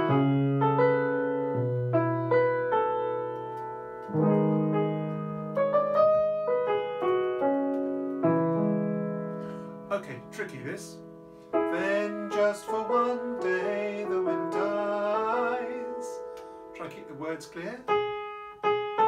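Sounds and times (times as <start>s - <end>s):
keyboard playing piano chords: 0.0s - 19.0s
man singing: 11.7s - 17.9s.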